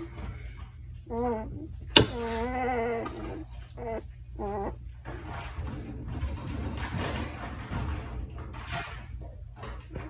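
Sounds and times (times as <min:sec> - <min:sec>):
puppy whimpering: 0:01.0 - 0:04.9.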